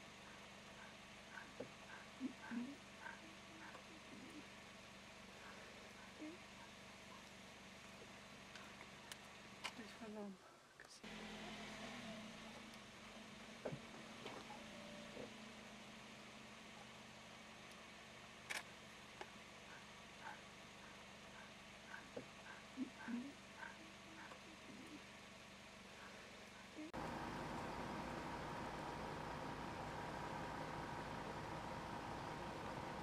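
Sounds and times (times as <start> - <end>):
vehicle engine idling: 25.9 - 33.0.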